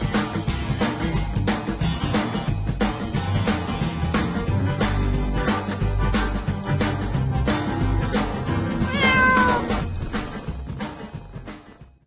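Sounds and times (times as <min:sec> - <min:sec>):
cat meow: 0:08.8 - 0:09.9.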